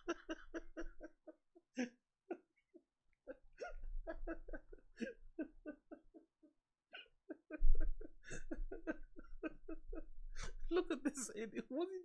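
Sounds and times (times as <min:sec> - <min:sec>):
man laughing hard: 0:00.0 - 0:11.7.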